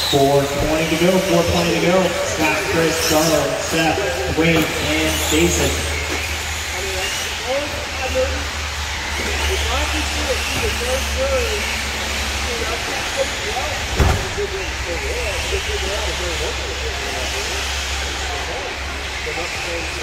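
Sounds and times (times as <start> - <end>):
indistinct voices: 0.0 - 20.0
rc truck motors whining: 0.0 - 20.0.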